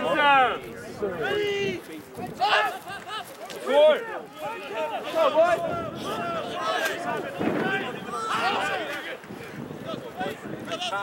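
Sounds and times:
men shouting: 0:02.4 - 0:09.2.

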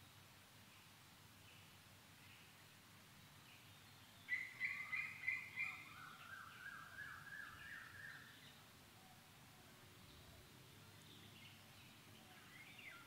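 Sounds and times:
bird singing: 0:00.0 - 0:13.0
faint background noise: 0:00.0 - 0:13.0.

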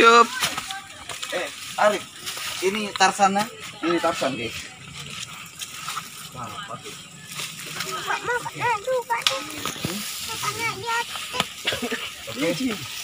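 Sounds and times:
people talking and calling out: 0:00.0 - 0:13.0.

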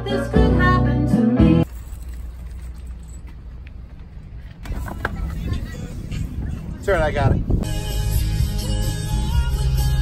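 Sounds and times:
grocery bags handled in cart: 0:01.6 - 0:03.6
steady low rumble: 0:02.3 - 0:09.8.

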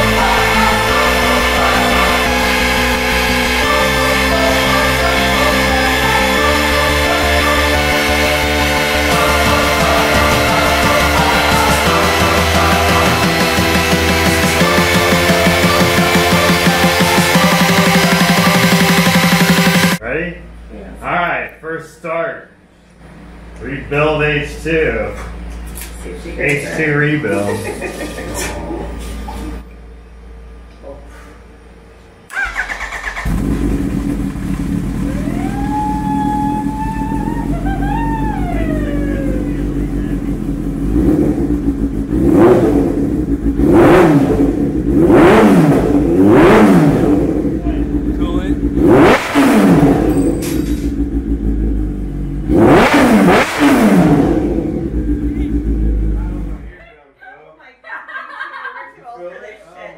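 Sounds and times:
motorcycle engine idling: 0:00.0 - 0:07.0, 0:32.3 - 0:43.6, 0:47.1 - 0:48.8, 0:49.9 - 0:52.5, 0:54.4 - 0:56.7
engine revving in throttle blips: 0:00.0 - 0:20.0, 0:32.3 - 0:56.7
starter motor cranking: 0:32.3 - 0:33.7.

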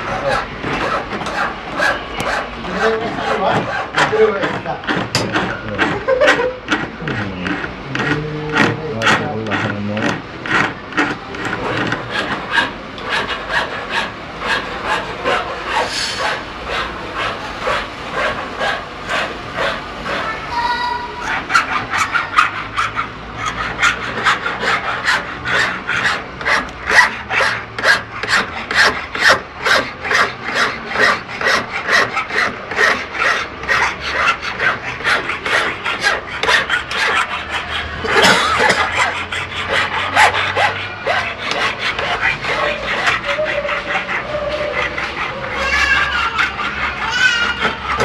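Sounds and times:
hand file rasping on metal: 0:00.0 - 0:48.0.

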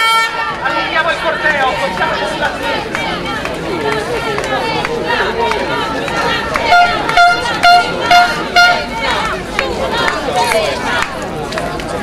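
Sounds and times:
horn tooting: 0:00.0 - 0:00.6, 0:06.6 - 0:09.3
crowd chatter: 0:00.0 - 0:12.0.

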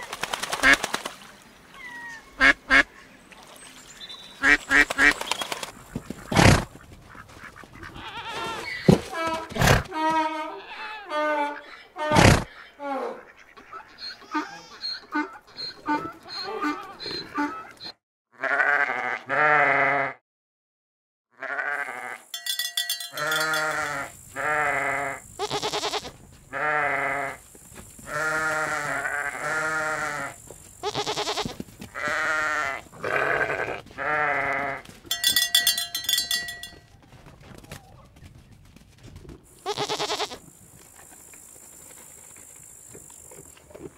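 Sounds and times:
sheep bleating: 0:18.4 - 0:20.2, 0:21.4 - 0:27.4, 0:28.1 - 0:36.6, 0:39.6 - 0:40.4.

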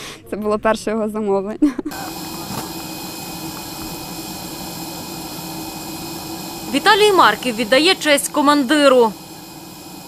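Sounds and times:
jet engine whine and roar: 0:01.9 - 0:10.0.

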